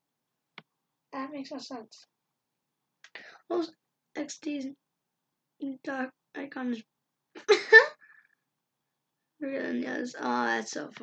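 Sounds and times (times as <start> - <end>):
narrator speaking: 1.2 - 2.1, 3.1 - 4.8, 5.6 - 6.8, 9.4 - 11.0.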